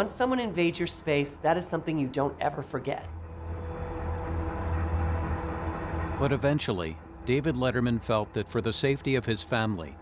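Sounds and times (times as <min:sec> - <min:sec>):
steady low drone: 0:03.1 - 0:10.0.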